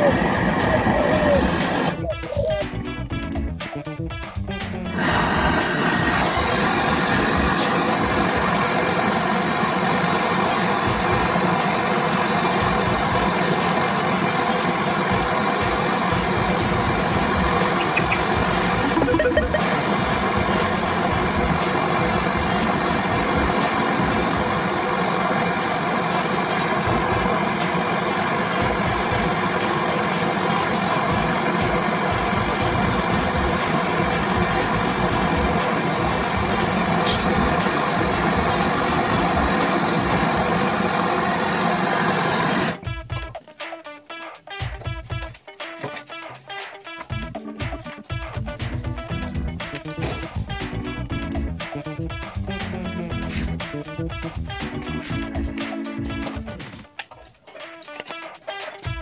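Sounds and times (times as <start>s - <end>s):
gas torch hissing: 0.0s - 3.0s, 4.7s - 18.9s, 19.6s - 42.8s.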